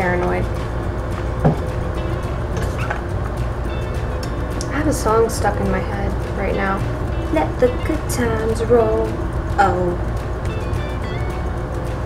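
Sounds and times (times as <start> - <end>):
woman's voice: 0.0 - 0.5, 4.6 - 10.1
steady low hum: 0.0 - 12.0.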